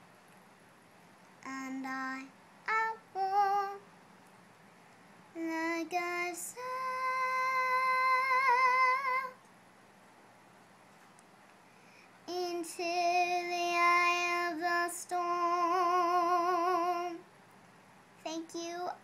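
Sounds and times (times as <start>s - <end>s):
girl singing unaccompanied: 1.4s - 3.9s, 5.3s - 9.4s, 12.2s - 17.3s, 18.2s - 19.0s.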